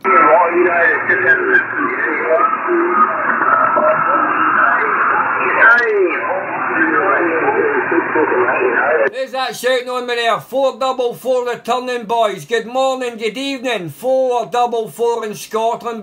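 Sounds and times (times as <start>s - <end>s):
overlapping voices over shortwave radio: 0.0s - 16.0s.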